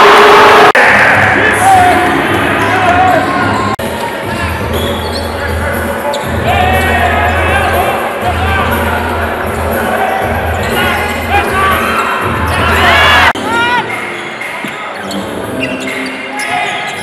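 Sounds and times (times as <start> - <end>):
arena music: 0.0 - 17.0
crowd voices: 0.0 - 17.0.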